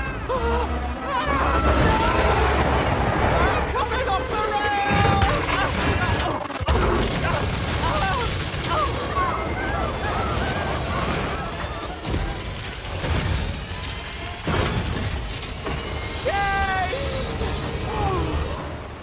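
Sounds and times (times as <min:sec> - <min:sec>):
voices shouting: 0:00.0 - 0:06.3, 0:07.3 - 0:15.0
music: 0:00.0 - 0:06.6
heavy booms and crashing: 0:01.4 - 0:18.9.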